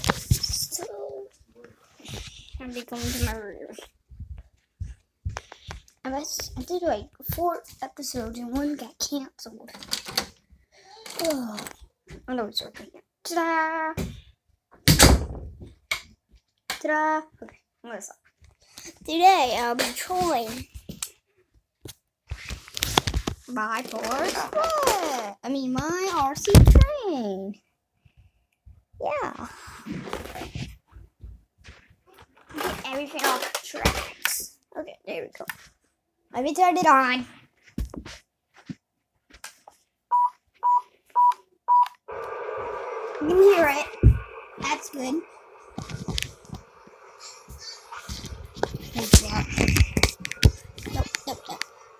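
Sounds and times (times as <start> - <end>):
boy speaking: 0.3 - 1.4, 2.0 - 3.9, 6.0 - 9.8, 10.9 - 14.1, 19.0 - 20.7, 23.5 - 27.6, 29.0 - 29.5, 32.6 - 35.5, 36.3 - 37.3, 43.2 - 46.6, 47.2 - 51.7
toy train steady hum: 42.1 - 51.9.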